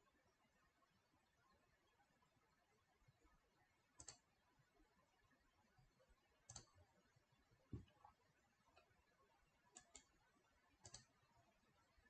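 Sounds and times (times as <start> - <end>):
faint sharp clicks: 4.0 - 4.2, 10.8 - 11.1.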